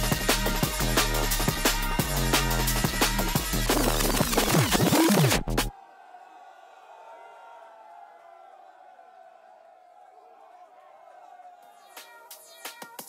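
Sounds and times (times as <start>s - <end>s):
drum and bass pitch bending: 0.0s - 5.7s.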